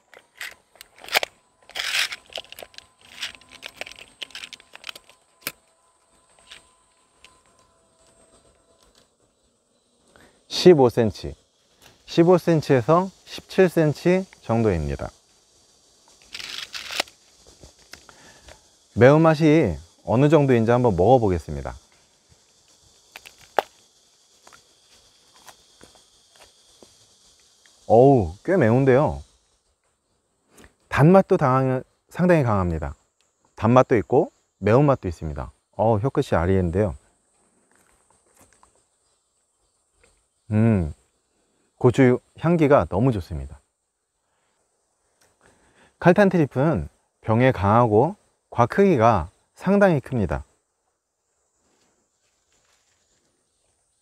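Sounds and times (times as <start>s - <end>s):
sharp clicks: 0.0s - 5.6s
tape measure rasping: 0.0s - 5.6s
rustles: 0.0s - 10.4s, 11.4s - 19.0s, 50.9s - 54.0s.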